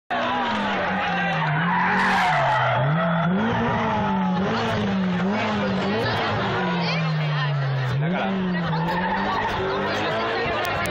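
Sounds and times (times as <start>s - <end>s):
rally car engine revving: 0.1s - 10.9s.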